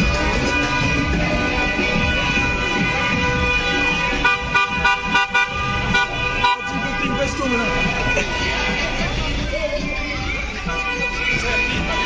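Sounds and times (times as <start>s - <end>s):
car horns honking: 0.0s - 12.0s.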